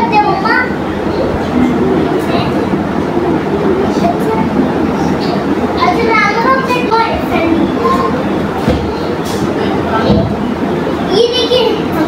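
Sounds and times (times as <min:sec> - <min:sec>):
electric fan whirring: 0:00.0 - 0:12.0.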